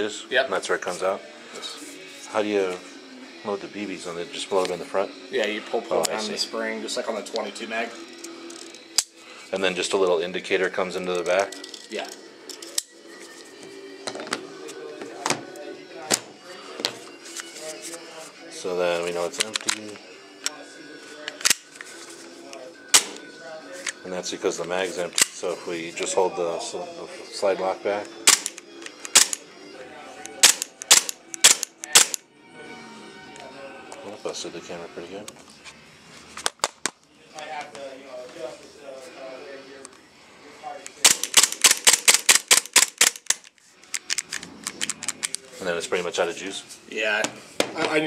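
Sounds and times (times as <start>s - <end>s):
faint background music: 0.0s - 48.0s
pistol clicks: 21.3s - 21.7s, 28.3s - 29.4s, 30.3s - 32.2s, 40.9s - 45.4s
airsoft pistol shots: 23.0s - 23.2s, 28.3s - 28.5s, 29.1s - 29.4s, 30.4s - 32.2s.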